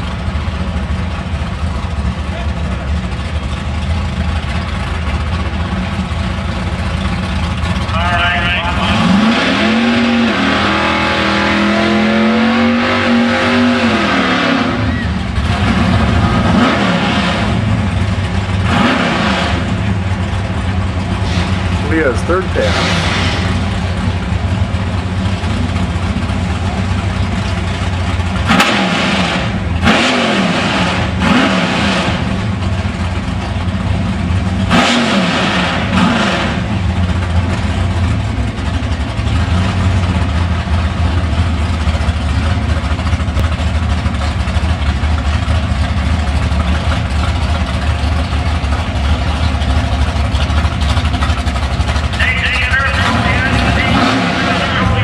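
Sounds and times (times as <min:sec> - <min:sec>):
car engine idling: 0:00.0 - 0:55.0
engine throttle blips: 0:00.0 - 0:55.0.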